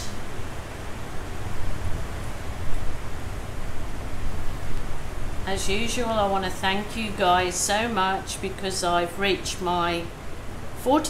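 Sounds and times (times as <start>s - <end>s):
torrential rain falling: 0.0s - 11.0s.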